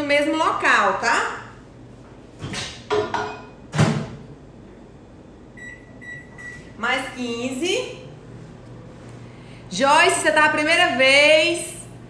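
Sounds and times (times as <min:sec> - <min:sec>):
keypad beeps: 0:05.6 - 0:06.6.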